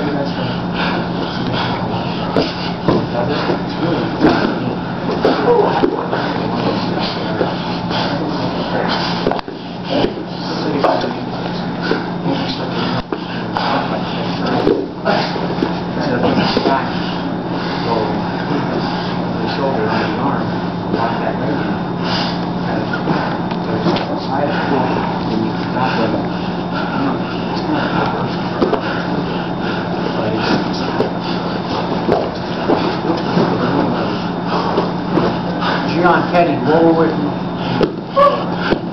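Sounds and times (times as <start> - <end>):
indistinct voices: 0.0 - 38.9
steady low hum: 0.0 - 38.9
breathing: 22.0 - 22.4, 35.6 - 36.0.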